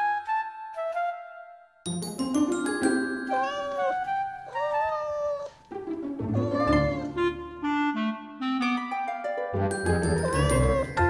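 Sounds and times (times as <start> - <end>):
light children's music: 0.0 - 11.0
cat meowing: 3.3 - 5.6, 6.3 - 7.3, 10.2 - 11.0.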